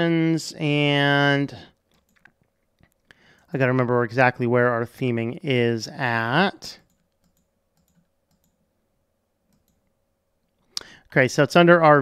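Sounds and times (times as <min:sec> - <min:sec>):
computer mouse clicks: 0:01.8 - 0:03.5, 0:06.8 - 0:08.6, 0:09.5 - 0:09.9.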